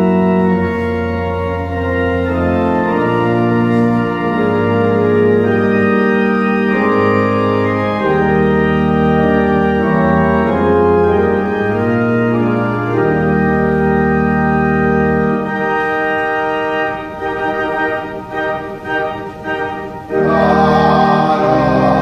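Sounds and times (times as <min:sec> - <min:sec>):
church organ playing hymn: 0:00.0 - 0:22.0.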